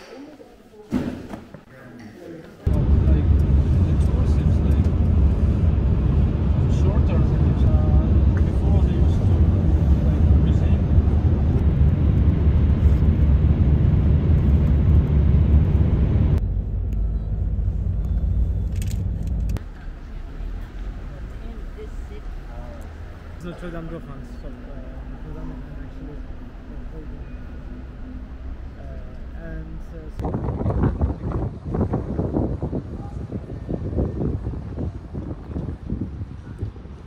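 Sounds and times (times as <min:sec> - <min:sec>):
car cabin road and wind rumble: 0:02.7 - 0:37.0.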